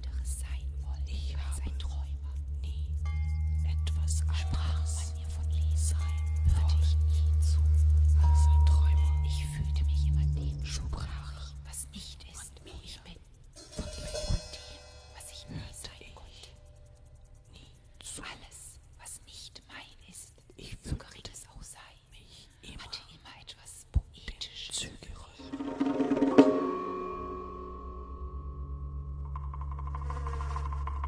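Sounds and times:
recorded voice whispering: 0:00.0 - 0:25.5.

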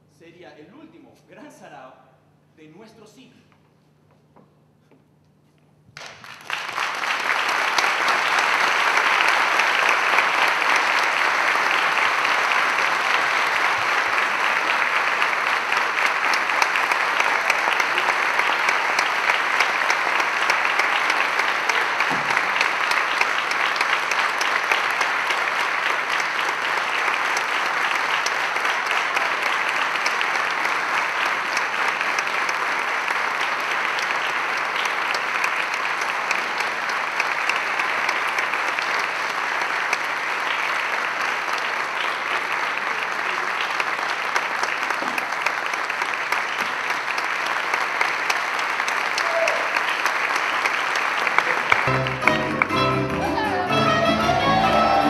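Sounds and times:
audience applauding: 0:06.0 - 0:55.0.

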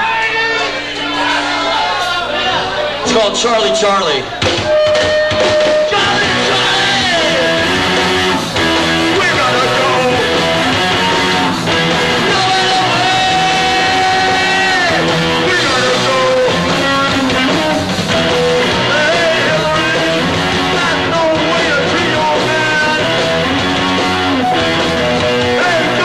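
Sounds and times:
bass: 0:00.0 - 0:26.0
drums: 0:00.0 - 0:26.0
distorted electric guitar: 0:04.2 - 0:26.0
shouted vocals: 0:05.7 - 0:08.4, 0:09.0 - 0:17.9.

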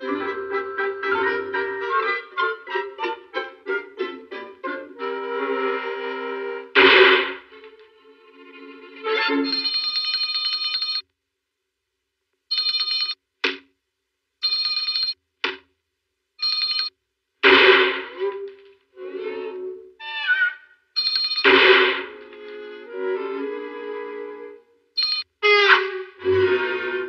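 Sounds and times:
orchestral cartoon music: 0:00.0 - 0:09.6, 0:17.6 - 0:20.6, 0:21.6 - 0:24.8, 0:25.4 - 0:27.0
handbell ringing: 0:09.5 - 0:11.0.

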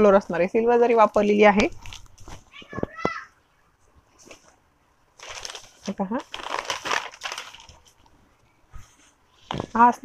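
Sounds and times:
paper wrapping crinkling: 0:01.7 - 0:02.6, 0:05.2 - 0:08.1.

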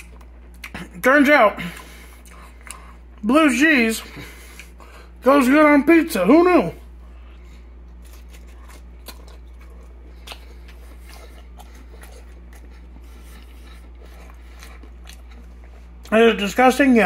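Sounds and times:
man chewing crunchy food: 0:00.0 - 0:03.3, 0:04.1 - 0:05.2, 0:06.8 - 0:16.4
steady low hum: 0:00.0 - 0:17.0.

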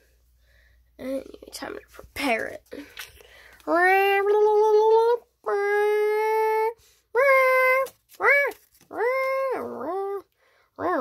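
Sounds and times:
child singing wordless tune: 0:03.7 - 0:10.2.

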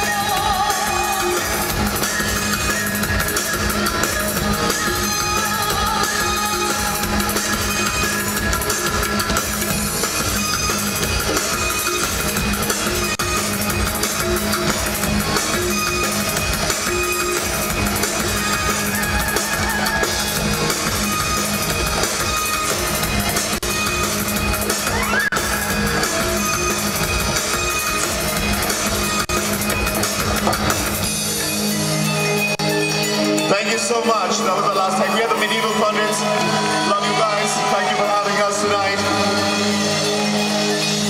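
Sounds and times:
electronic fusion music: 0:00.0 - 0:41.0.

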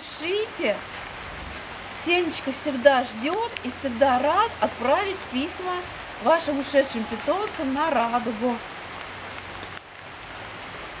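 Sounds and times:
light rain falling: 0:00.0 - 0:11.0.

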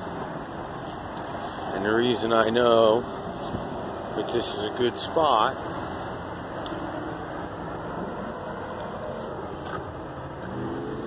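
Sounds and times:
rushing outdoor noise: 0:00.0 - 0:11.0.

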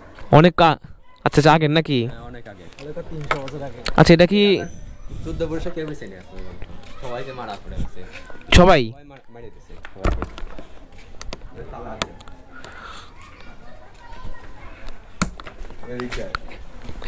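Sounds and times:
man speaking: 0:00.4 - 0:09.6.

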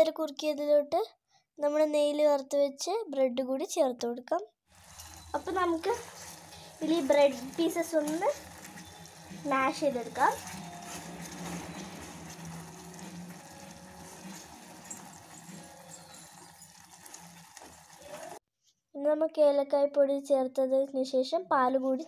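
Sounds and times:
ladle stirring in a saucepan: 0:04.7 - 0:18.4
syrup bubbling in a saucepan: 0:04.7 - 0:18.4.

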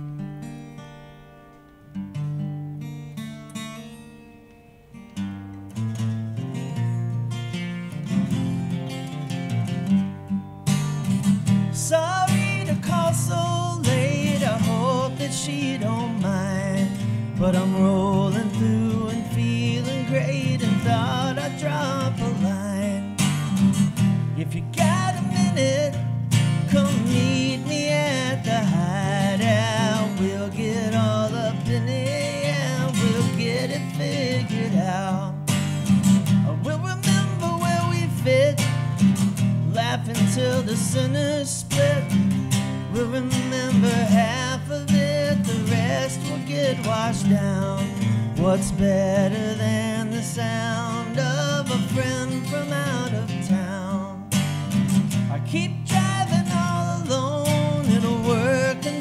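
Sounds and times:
acoustic guitar strumming: 0:00.0 - 0:59.0
man singing: 0:11.7 - 0:35.6, 0:36.2 - 0:59.0.

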